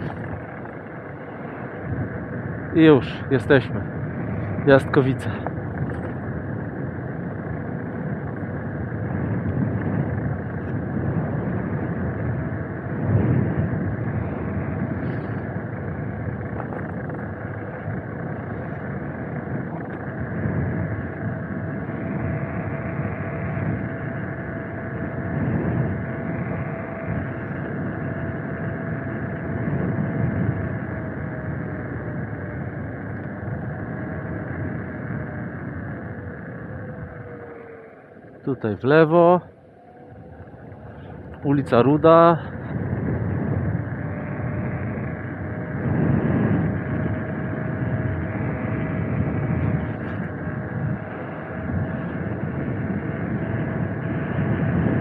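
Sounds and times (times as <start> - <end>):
thin motor whine: 0.0 - 55.0
wind buffeting microphone: 0.0 - 55.0.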